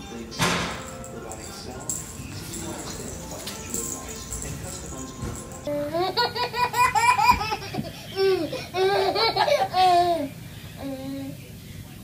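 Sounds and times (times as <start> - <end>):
high-pitched laughter: 5.9 - 10.3.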